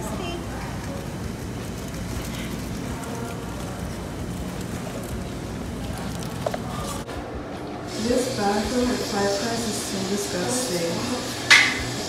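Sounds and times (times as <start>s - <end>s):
restaurant background rumble: 0.0s - 12.0s.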